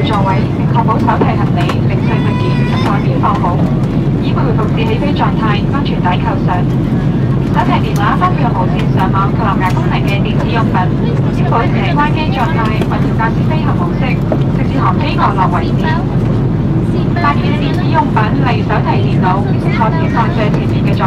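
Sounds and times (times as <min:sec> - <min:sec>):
airplane cabin drone: 0:00.0 - 0:21.0.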